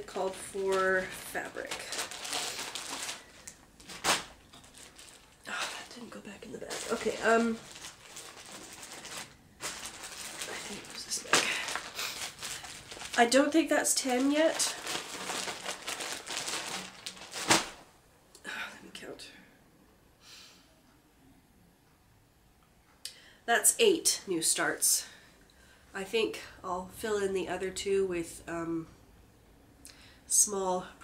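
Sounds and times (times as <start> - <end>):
plastic bag rustle: 0.0 - 17.8.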